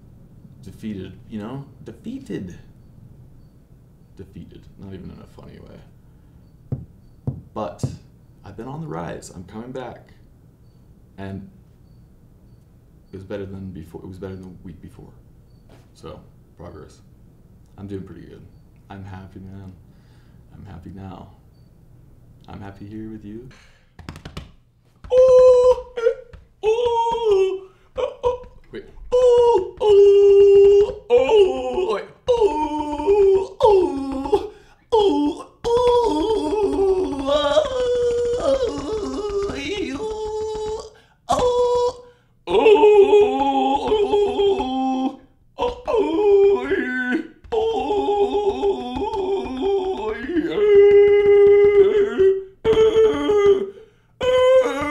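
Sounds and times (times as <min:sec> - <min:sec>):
breaths: 0:06.0 - 0:06.6, 0:19.8 - 0:20.5, 0:23.5 - 0:24.0, 0:27.6 - 0:28.0, 0:34.5 - 0:34.9, 0:40.9 - 0:41.3, 0:42.0 - 0:42.4, 0:53.7 - 0:54.2
man slapping his chest: 0:23.9 - 0:25.2
man singing long wordless notes: 0:25.0 - 0:54.9
man yelling: 0:25.1 - 0:54.9.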